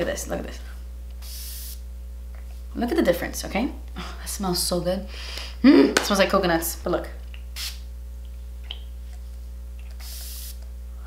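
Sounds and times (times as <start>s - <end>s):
low electrical hum: 0.0s - 11.0s
spray bottle spritzing: 1.2s - 1.8s, 7.6s - 7.9s, 9.9s - 10.6s.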